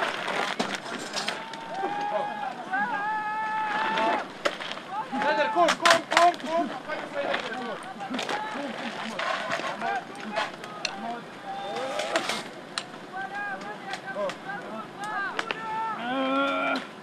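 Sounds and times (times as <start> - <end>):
loud held shout: 1.2 - 4.3, 4.9 - 5.9, 7.8 - 8.7, 9.8 - 12.2, 13.1 - 17.0
men shouting over one another: 1.2 - 12.2, 13.0 - 17.0.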